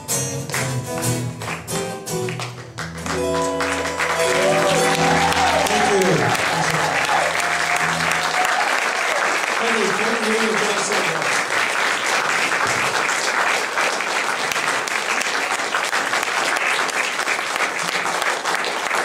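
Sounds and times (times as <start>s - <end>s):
audience applauding: 0.4s - 19.0s
band playing held chord: 3.0s - 8.6s
crowd shouting: 4.2s - 9.2s.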